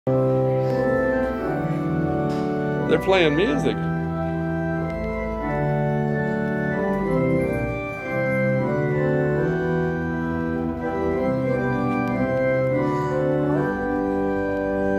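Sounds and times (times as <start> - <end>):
organ playing chords: 0.1 - 14.9.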